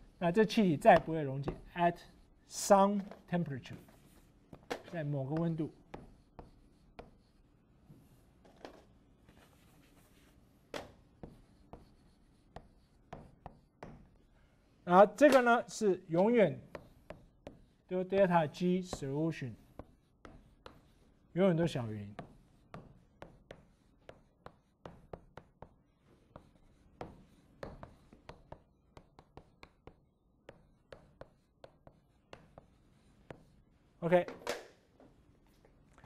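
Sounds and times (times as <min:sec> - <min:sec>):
chalk tapping and scratching: 0:00.0 - 0:34.3.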